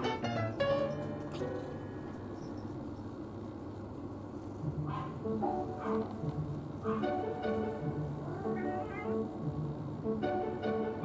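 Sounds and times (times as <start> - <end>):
string music: 4.6 - 11.0
cat meowing: 8.2 - 9.3.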